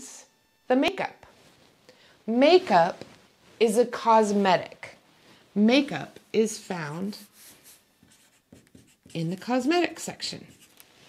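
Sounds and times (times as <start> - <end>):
marker pen writing on paper: 6.7 - 10.8.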